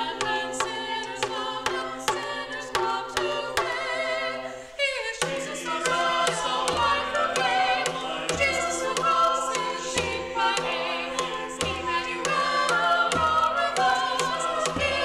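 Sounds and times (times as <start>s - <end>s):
sharp percussive taps: 0.0s - 4.2s, 5.2s - 15.0s
choir singing a cappella: 0.0s - 15.0s.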